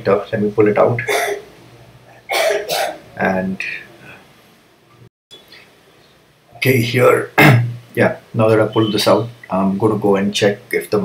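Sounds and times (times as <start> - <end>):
man coughing: 1.0 - 1.4, 2.3 - 3.0, 7.4 - 7.8.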